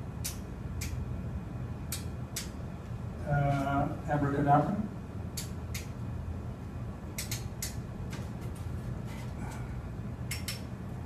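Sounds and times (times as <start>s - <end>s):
low room rumble: 0.0s - 11.0s
switch clicks: 7.2s - 7.8s, 10.3s - 10.7s.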